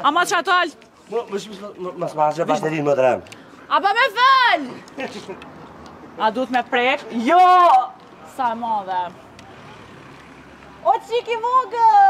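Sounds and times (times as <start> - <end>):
woman speaking through megaphone: 0.0 - 0.8, 3.7 - 4.8, 10.8 - 12.0.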